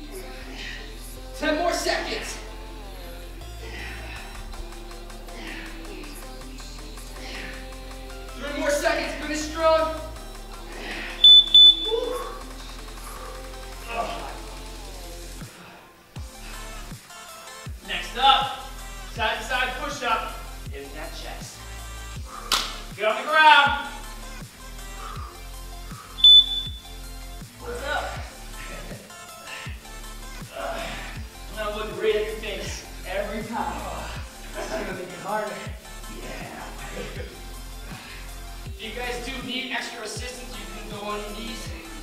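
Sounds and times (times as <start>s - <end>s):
background music with beat: 0.0s - 42.0s
timer beeps: 11.2s - 12.0s, 26.2s - 26.9s.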